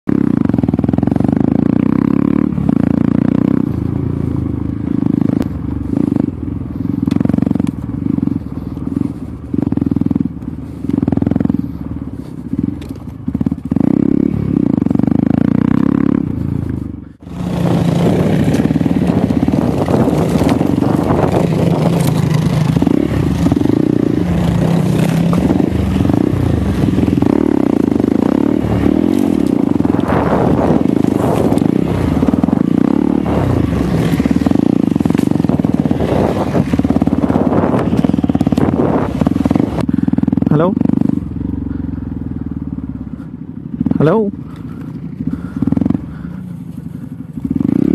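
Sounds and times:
motorcycle engine revving: 0.0s - 47.9s.

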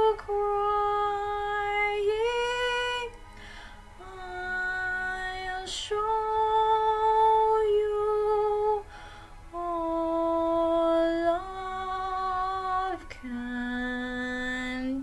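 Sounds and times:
woman singing slow song: 0.0s - 15.0s
singer breathing: 3.3s - 4.0s, 8.9s - 9.5s.

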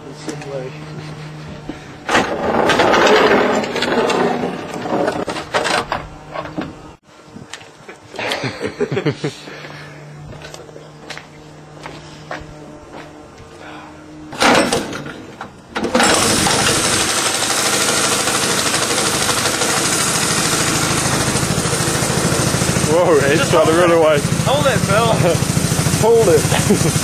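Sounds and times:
go-kart engine starting and running: 2.0s - 5.9s, 14.4s - 27.0s.

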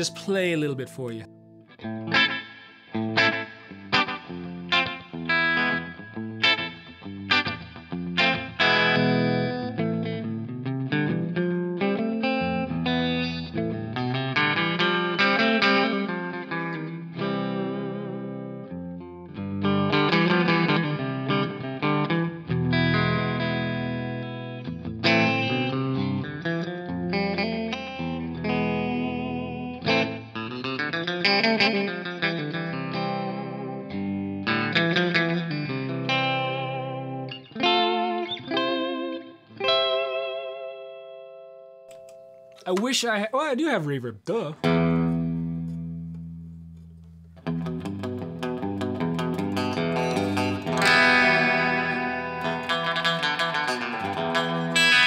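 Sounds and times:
electric guitar with vibrato: 0.0s - 42.6s, 44.6s - 55.0s.

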